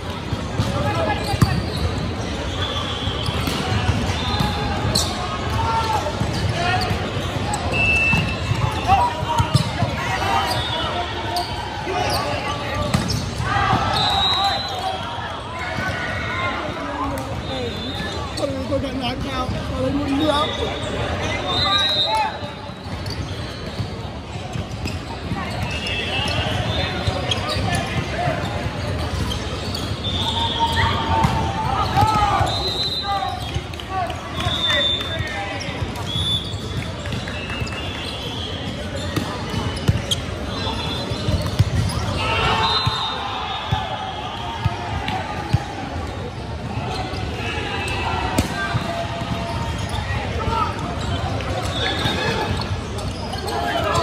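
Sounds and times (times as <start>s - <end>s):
sneakers squeaking on court: 0.2s - 16.2s, 16.8s - 54.0s.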